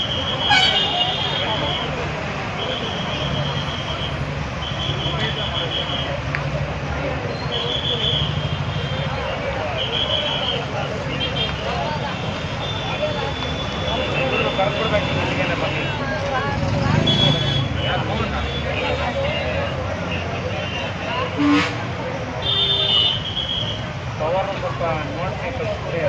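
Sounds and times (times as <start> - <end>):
crowd talking: 0.0 - 26.0
road traffic: 0.0 - 26.0
vehicle horn toots: 0.1 - 1.6, 17.0 - 18.0, 20.6 - 21.8, 22.4 - 23.8.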